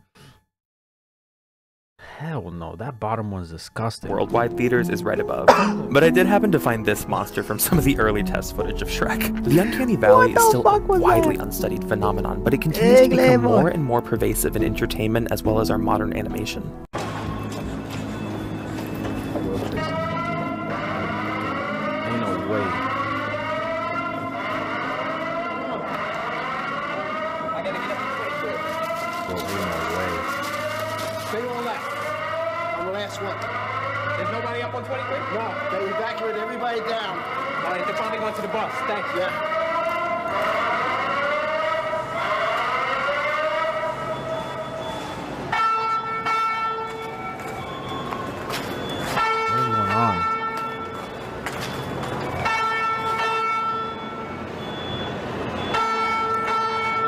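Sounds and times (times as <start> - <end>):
electronic alarm wailing: 10.0 - 11.4, 17.3 - 57.0.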